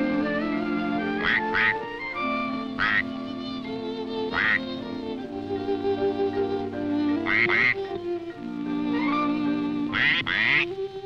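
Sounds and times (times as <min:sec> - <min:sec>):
background music sustained notes: 0:00.0 - 0:11.0
cartoon duck quacks: 0:01.2 - 0:01.8, 0:09.9 - 0:10.6.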